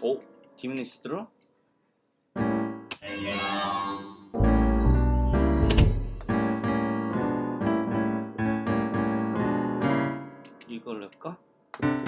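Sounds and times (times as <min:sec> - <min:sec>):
piano playing chords and melody: 0:02.3 - 0:10.9, 0:11.8 - 0:12.0.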